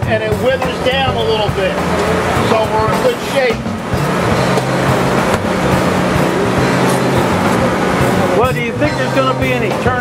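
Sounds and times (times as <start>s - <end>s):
low motor hum: 0.4s - 10.0s
outdoor noise: 0.6s - 8.4s.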